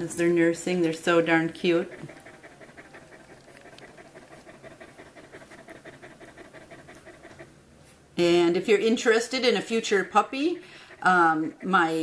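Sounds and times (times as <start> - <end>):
dog panting: 0.0 - 12.0.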